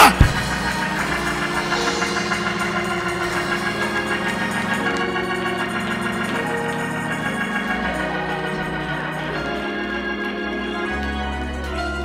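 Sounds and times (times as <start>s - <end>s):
organ playing held chords: 0.0s - 12.0s.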